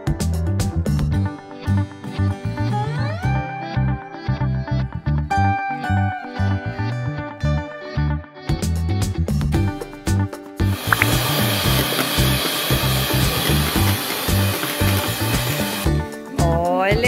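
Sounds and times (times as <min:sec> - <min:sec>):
music with a steady beat: 0:08.4 - 0:17.0
electric mixer whipping cream: 0:10.8 - 0:16.0.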